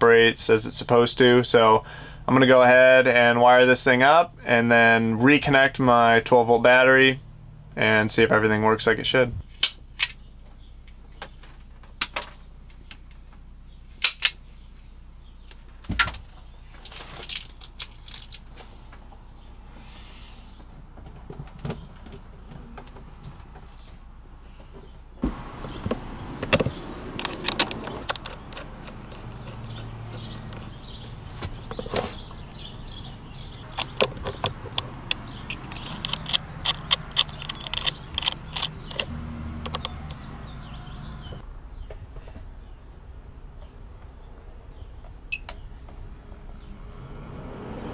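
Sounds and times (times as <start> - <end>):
outdoor background noise: 0.0 - 47.9
wire and fitting clicks: 25.2 - 30.8, 33.7 - 40.2
wrench clicking on metal: 34.8 - 39.1.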